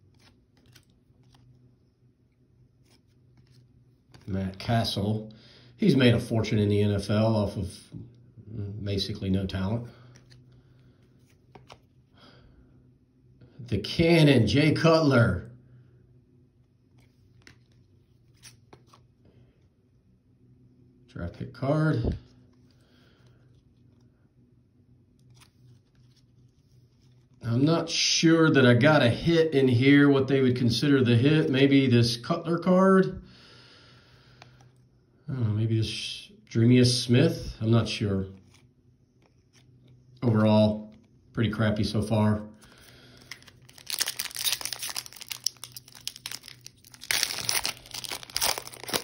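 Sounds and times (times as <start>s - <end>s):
wrapper crinkling and tearing: 42.7s - 49.0s.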